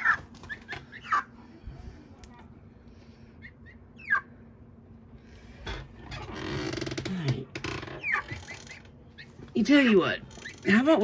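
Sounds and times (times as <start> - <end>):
chicks fluttering and scuffling: 0.0 - 1.3
chicks peeping: 0.0 - 1.4, 3.4 - 4.4, 7.8 - 11.0.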